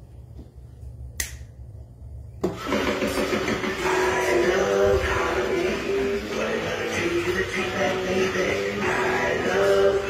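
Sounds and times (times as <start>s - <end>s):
low steady rumble: 0.0s - 2.4s
sharp click: 1.2s - 1.5s
loud music with repeating beat: 2.4s - 10.0s.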